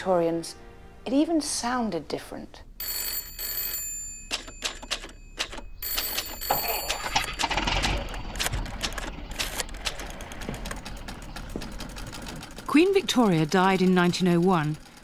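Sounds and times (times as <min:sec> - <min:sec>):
telephone bell ringing: 0:02.8 - 0:08.8
rapid mechanical clicking: 0:04.3 - 0:15.0.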